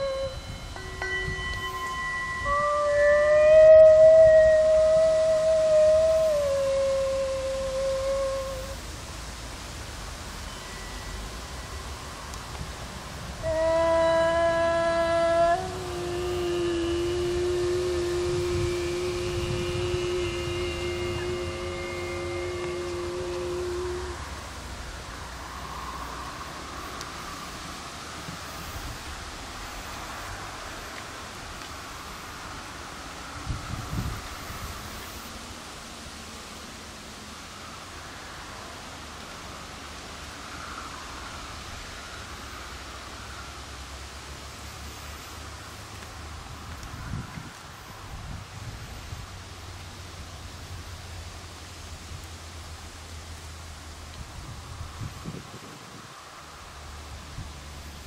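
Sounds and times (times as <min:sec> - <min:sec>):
long sustained tones: 0:00.0 - 0:47.3
faint outdoor background noise: 0:00.0 - 0:58.0.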